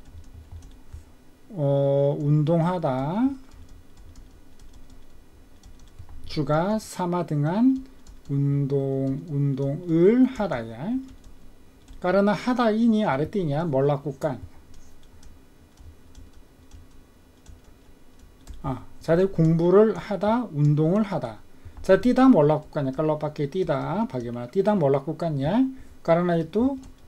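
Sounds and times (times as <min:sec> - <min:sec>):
low room hum: 0:00.0 - 0:27.0.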